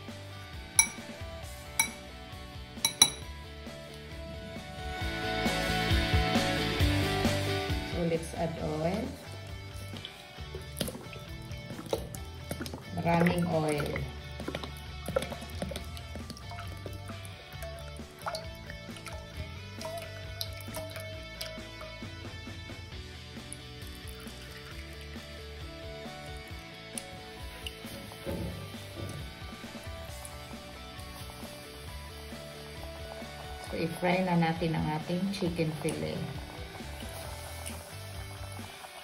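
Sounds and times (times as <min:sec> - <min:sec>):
background music: 0:00.0 - 0:39.0
oil pouring into a pot: 0:08.5 - 0:39.0.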